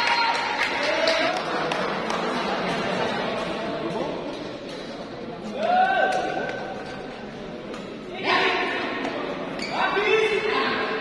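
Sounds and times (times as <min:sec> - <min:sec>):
shoes squealing on court floor: 0:09.5 - 0:10.0.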